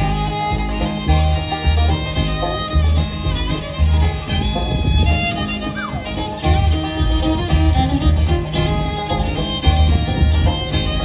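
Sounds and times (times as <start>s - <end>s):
acoustic guitar: 0.0s - 11.0s
banjo: 0.0s - 11.0s
fiddle: 0.0s - 11.0s
upright bass: 0.0s - 11.0s.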